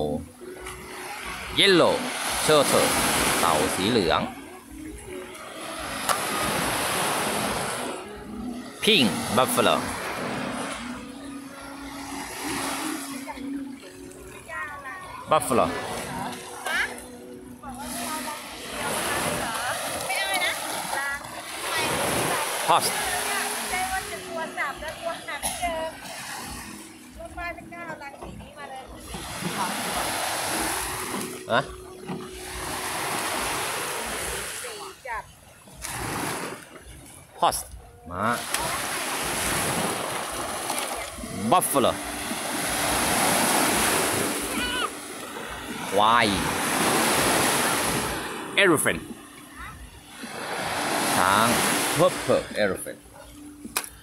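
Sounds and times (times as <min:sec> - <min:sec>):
surf washing onto beach: 0:00.0 - 0:04.2, 0:17.7 - 0:25.1, 0:29.1 - 0:31.6, 0:38.3 - 0:48.9, 0:50.1 - 0:52.8.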